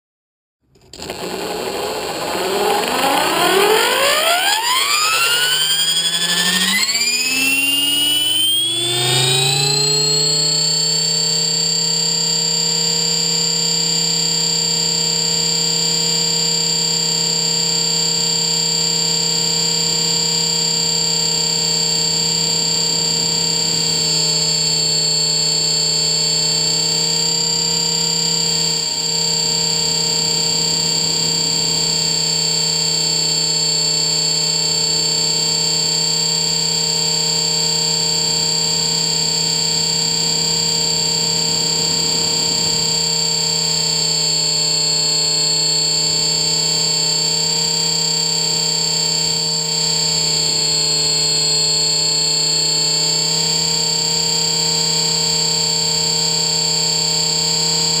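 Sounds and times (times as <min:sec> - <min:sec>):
electric helicopter motor whine: 0:00.8 - 0:58.0.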